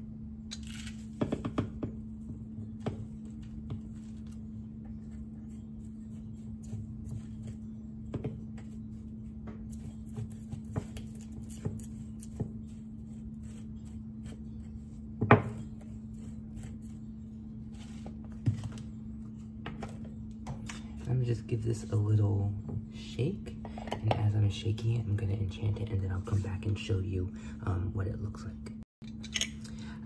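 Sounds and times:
steady low hum: 0:00.0 - 0:30.0
dried herbs rustling: 0:03.0 - 0:19.0.

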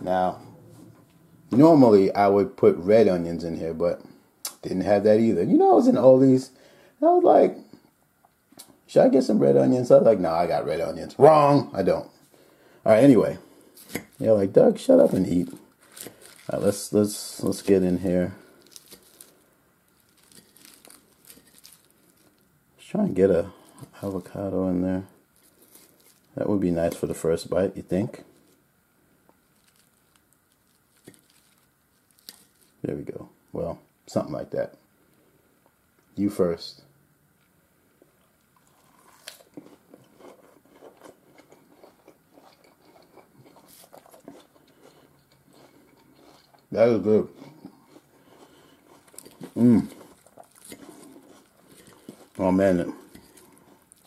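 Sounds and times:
salad leaves rustling: 0:12.9 - 0:22.4, 0:23.1 - 0:27.5, 0:29.4 - 0:32.9, 0:48.5 - 0:54.0.

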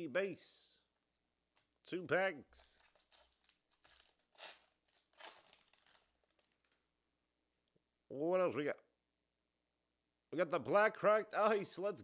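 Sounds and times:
wrapper crinkling and tearing: 0:02.8 - 0:06.9.

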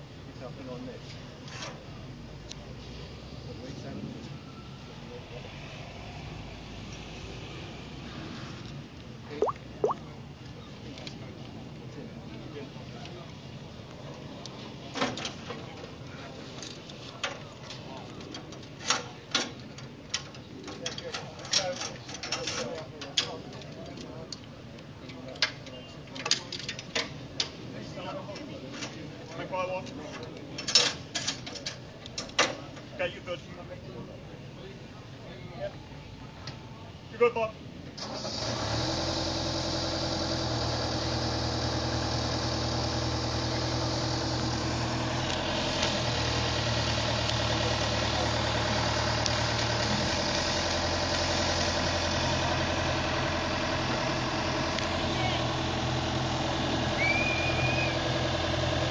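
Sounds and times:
engine starting and idling: 0:38.0 - 0:44.6.

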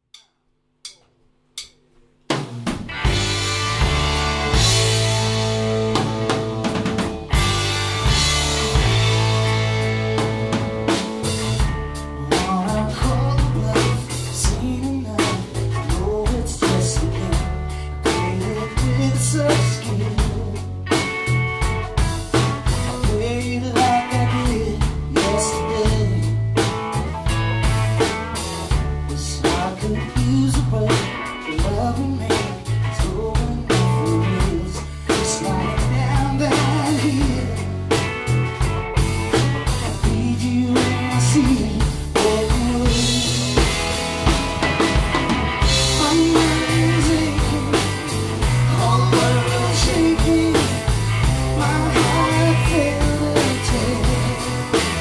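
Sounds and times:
drum kit: 0:00.0 - 0:55.0
bass guitar: 0:02.3 - 0:55.0
electric guitar: 0:02.6 - 0:55.0
man singing: 0:12.1 - 0:20.8, 0:23.0 - 0:26.6, 0:29.1 - 0:37.9, 0:39.8 - 0:43.8, 0:45.6 - 0:54.9.

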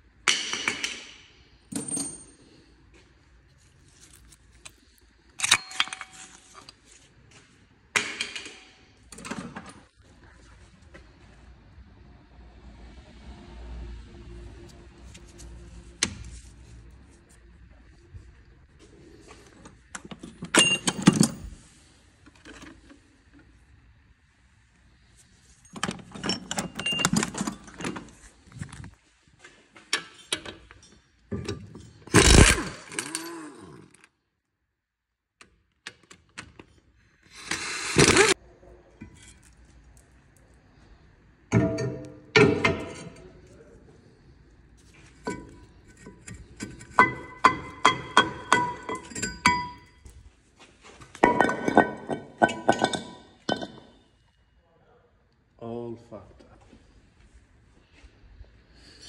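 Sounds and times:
metal tools clanking: 0:05.4 - 0:06.7, 0:20.1 - 0:21.6, 0:25.7 - 0:28.2, 0:45.1 - 0:50.2, 0:51.2 - 0:54.1.

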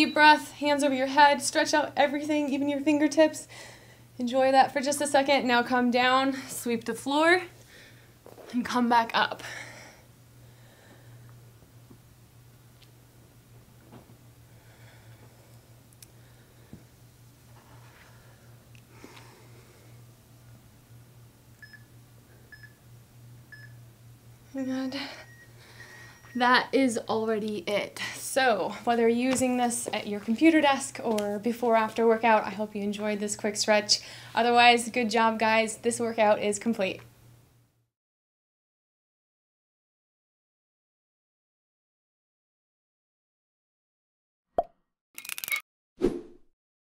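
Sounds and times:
low steady hum: 0:00.0 - 0:37.8.

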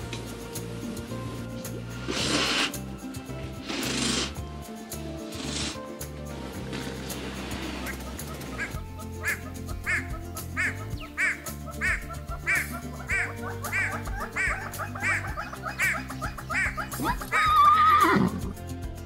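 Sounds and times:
background music: 0:00.0 - 0:19.0
hornbill calling: 0:06.9 - 0:18.6
horse whinny: 0:17.3 - 0:18.6.

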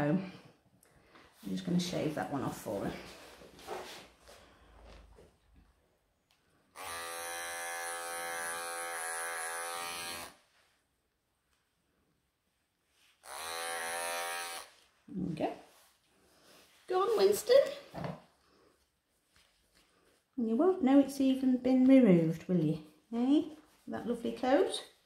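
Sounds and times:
electric clippers buzzing: 0:06.7 - 0:10.4, 0:13.2 - 0:14.7.

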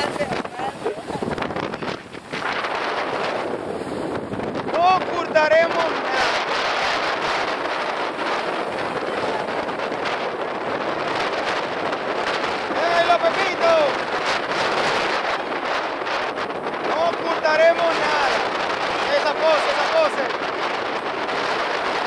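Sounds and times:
surf breaking on shore: 0:00.0 - 0:22.0
wind buffeting microphone: 0:00.0 - 0:22.0.

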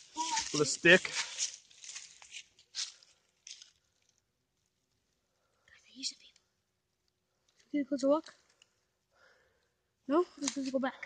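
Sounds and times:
footsteps crunching through dry leaves: 0:00.0 - 0:03.8.

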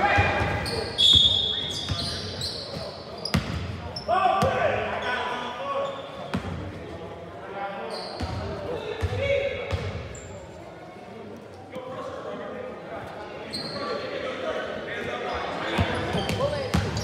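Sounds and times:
sneaker squeaks: 0:00.2 - 0:04.1, 0:04.9 - 0:06.6, 0:07.8 - 0:10.6, 0:13.4 - 0:14.1, 0:15.0 - 0:17.0.

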